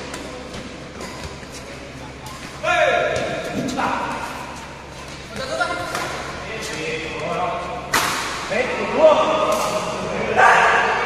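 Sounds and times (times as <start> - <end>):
racket hitting shuttlecock: 7.9 - 8.4.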